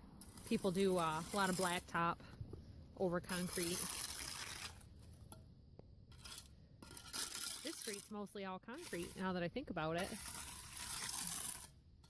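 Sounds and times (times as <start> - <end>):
trowel scraping concrete: 0.0 - 2.2, 3.0 - 5.4, 6.1 - 12.0.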